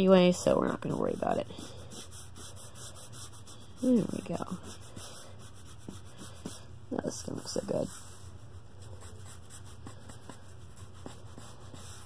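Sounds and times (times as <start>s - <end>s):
marker rubbing over paper: 0.5s - 12.0s.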